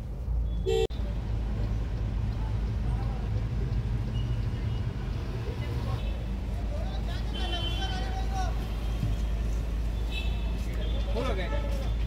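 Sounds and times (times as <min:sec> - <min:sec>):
car engine and road rumble: 0:00.0 - 0:12.0
car horn toot: 0:00.6 - 0:00.9.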